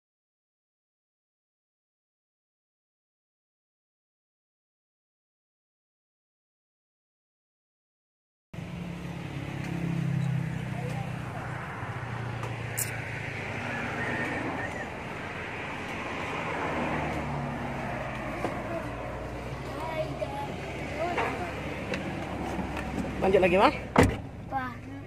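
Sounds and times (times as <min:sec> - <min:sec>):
vehicle engine running: 0:08.6 - 0:25.0.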